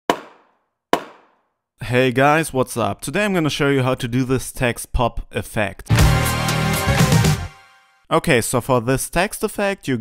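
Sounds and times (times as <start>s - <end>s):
man talking: 1.8s - 5.9s, 8.1s - 10.0s.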